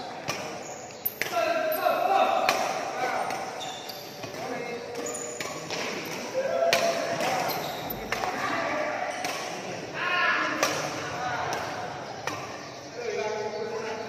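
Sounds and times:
shoes squeaking on court: 0.0 - 2.0, 2.6 - 8.5
racket hitting shuttlecock: 0.2 - 1.4, 2.4 - 8.4, 9.1 - 9.7, 10.5 - 12.6.

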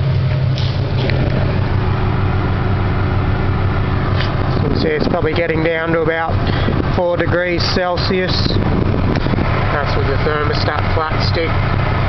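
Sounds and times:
air conditioning compressor running: 0.0 - 12.0
car engine idling: 0.0 - 12.0.

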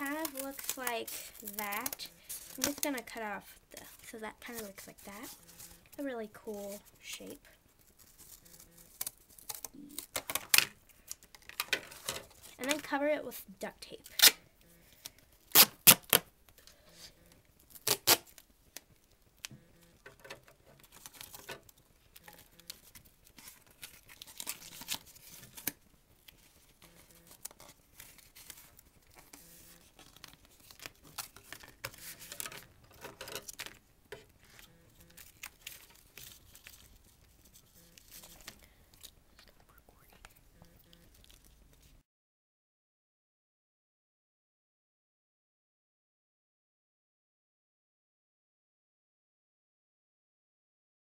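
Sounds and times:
duct tape ripping: 0.0 - 3.2, 8.0 - 12.8, 14.0 - 14.4, 15.0 - 16.3, 17.6 - 18.5, 20.2 - 33.8, 34.4 - 39.2
tape crinkling on cardboard: 0.0 - 6.0, 6.7 - 13.0, 14.0 - 42.0.

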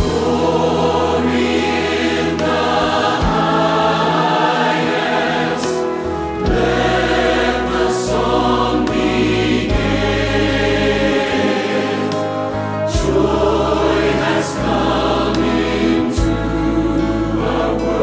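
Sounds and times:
choir singing with accompaniment: 0.0 - 18.0.

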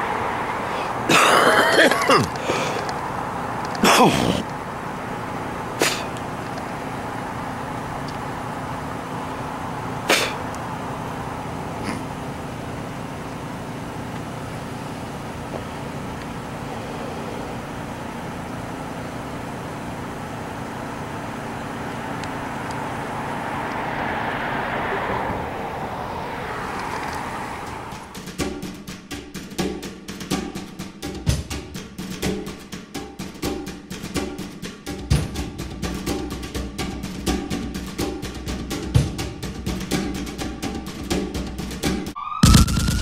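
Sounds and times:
car driving past: 0.0 - 19.1, 20.4 - 28.2
street noise with engine hum: 0.0 - 43.0
music with sharp drum beat: 28.1 - 43.0.

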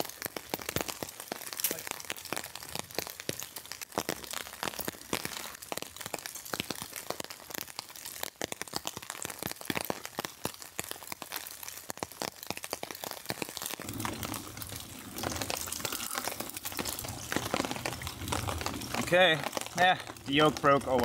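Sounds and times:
egg frying in oil: 0.0 - 21.0
heavy rain on a tarp: 0.0 - 21.0.

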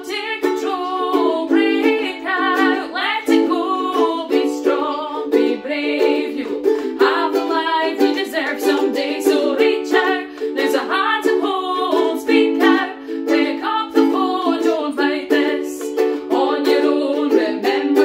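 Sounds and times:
ukuleles strumming: 0.0 - 18.0
women singing together: 0.0 - 18.0.

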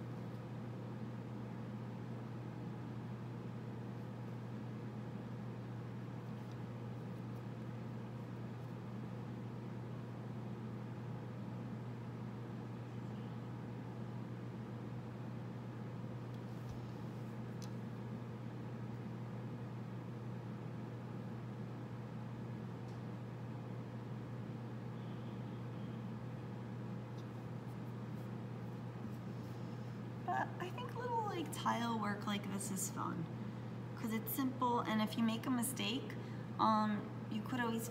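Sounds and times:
low room hum: 0.0 - 37.9.

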